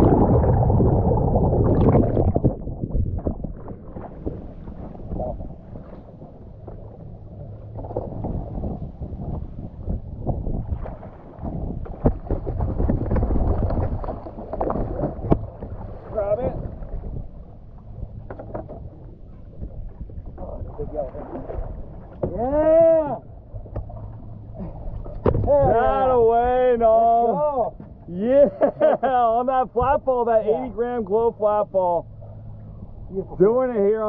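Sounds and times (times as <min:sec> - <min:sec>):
fish thrashing in water: 0:00.0 - 0:05.4, 0:10.7 - 0:16.4
wind: 0:00.0 - 0:34.0
knocks against boat: 0:11.4 - 0:15.8, 0:18.2 - 0:18.8, 0:22.1 - 0:22.4, 0:23.7 - 0:24.1, 0:25.1 - 0:25.8.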